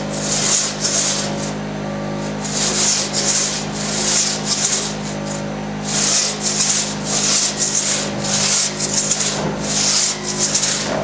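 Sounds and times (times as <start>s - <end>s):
hand saw rasping through log: 0.0s - 1.6s, 2.2s - 11.0s
steady low hum: 0.0s - 11.0s.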